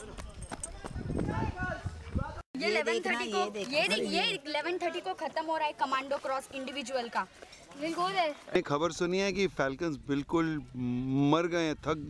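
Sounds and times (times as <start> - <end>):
running footsteps on dirt: 0.0 - 2.4, 4.9 - 8.7
wind rumble on microphone: 0.6 - 2.4.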